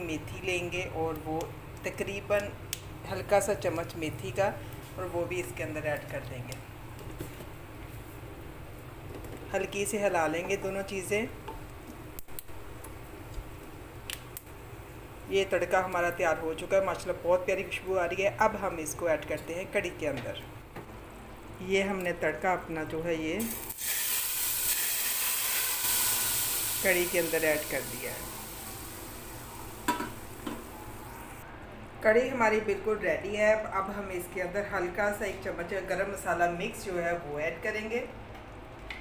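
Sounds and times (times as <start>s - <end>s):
seeds sizzling in oil: 23.4s - 31.4s.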